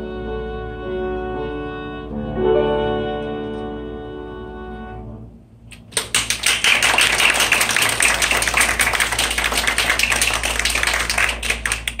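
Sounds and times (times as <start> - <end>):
audience applauding: 5.8 - 12.0.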